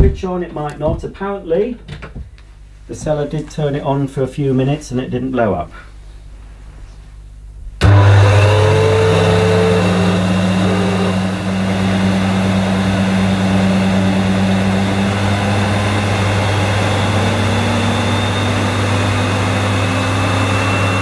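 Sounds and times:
vacuum cleaner motor whine: 7.8 - 21.0.

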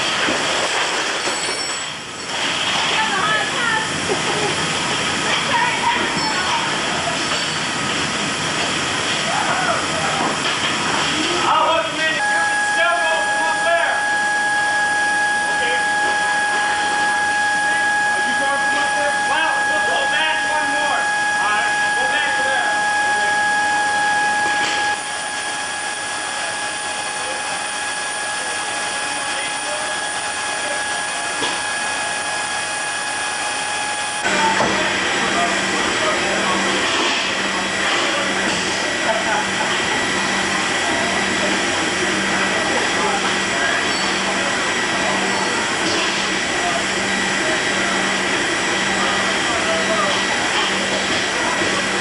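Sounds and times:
high steady whine: 2.2 - 52.0
aircraft machinery roar: 3.6 - 52.0.

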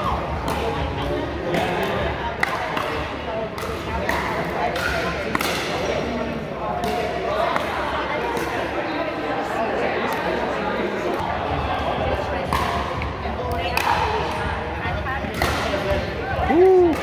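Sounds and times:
background chatter: 0.0 - 17.0.

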